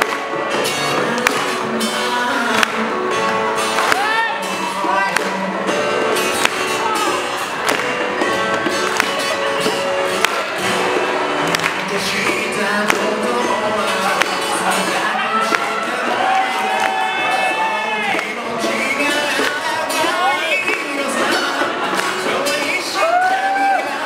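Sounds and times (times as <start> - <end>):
sharp claps or beats: 0.0 - 0.4, 1.2 - 1.6, 2.5 - 5.4, 6.2 - 8.1, 8.7 - 10.8, 11.4 - 13.1, 15.5 - 15.8
acoustic guitar: 0.0 - 24.0
keyboard: 0.0 - 24.0
man singing into a microphone: 0.9 - 3.3, 11.8 - 24.0.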